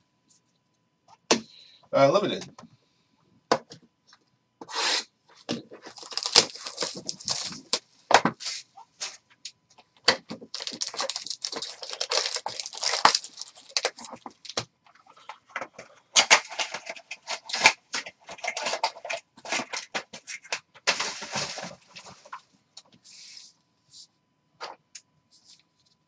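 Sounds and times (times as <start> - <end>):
foil packs crinkling and rustling: 5.7 - 7.8, 10.4 - 15.4, 16.2 - 22.4.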